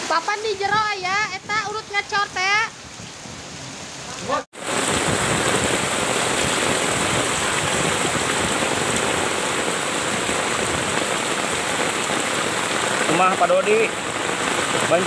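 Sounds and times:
heavy rain pouring: 0:00.0 - 0:15.0.

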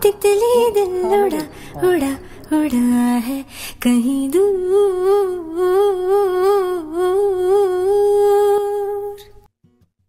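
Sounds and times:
high voice humming with vibrato: 0:00.8 - 0:03.4.

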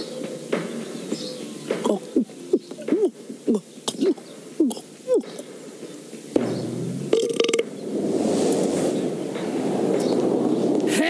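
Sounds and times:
person belching: 0:01.8 - 0:05.4, 0:07.0 - 0:07.7.

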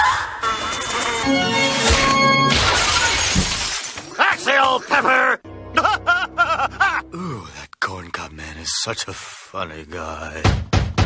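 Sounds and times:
cartoon crash shattering: 0:01.7 - 0:04.2
man cackling laughter: 0:04.8 - 0:07.2.

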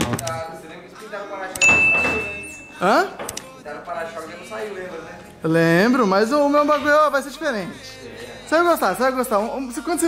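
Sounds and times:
bright bell ding: 0:01.6 - 0:03.1.

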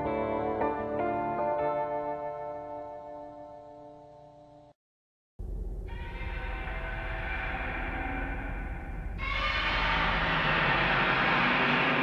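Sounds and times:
monster roar: 0:09.2 - 0:12.0.

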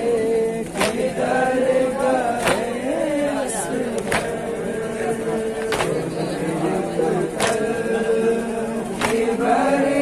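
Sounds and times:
men chanting together: 0:00.0 - 0:10.0
hand slapping chest: 0:00.7 - 0:01.2, 0:02.4 - 0:02.8, 0:04.0 - 0:04.4, 0:05.6 - 0:06.0, 0:07.4 - 0:07.6, 0:09.0 - 0:09.4.

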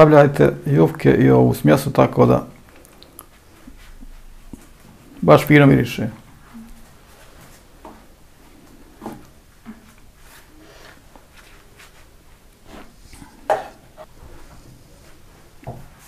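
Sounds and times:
soft taps and rustles: 0:02.7 - 0:05.1, 0:06.2 - 0:16.0.

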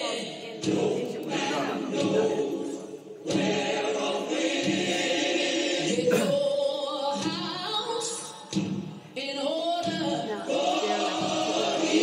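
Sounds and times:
choir singing gospel music: 0:00.0 - 0:12.0.

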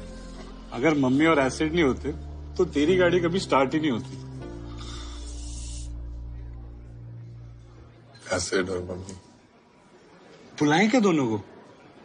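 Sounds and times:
low sustained score tones: 0:00.0 - 0:08.9
soft hissing noise: 0:04.0 - 0:09.8.

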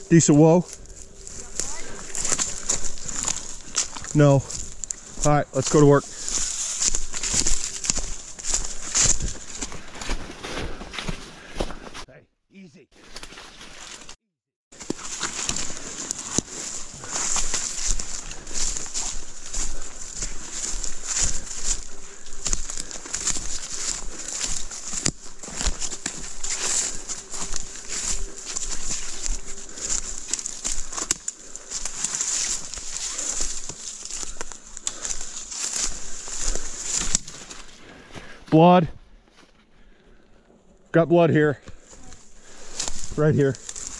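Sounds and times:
brushing through undergrowth: 0:00.0 - 0:12.1, 0:13.0 - 0:38.4, 0:41.6 - 0:43.9
footsteps crunching dry leaves: 0:00.0 - 0:12.1, 0:13.0 - 0:40.0, 0:41.6 - 0:43.9.

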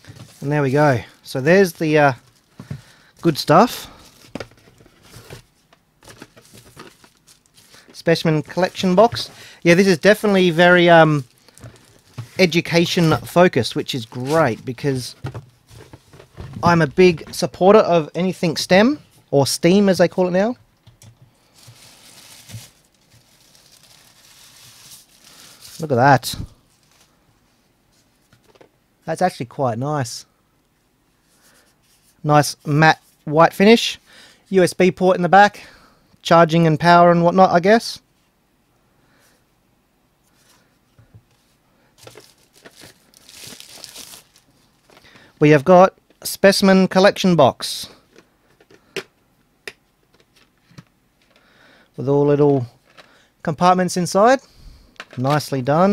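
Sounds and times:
plastic bag rustling: 0:03.8 - 0:17.2, 0:21.4 - 0:27.2, 0:42.0 - 0:45.2.

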